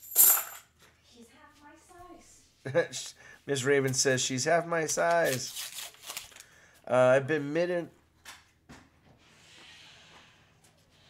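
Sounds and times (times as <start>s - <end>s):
coins clinking: 0.0s - 0.6s.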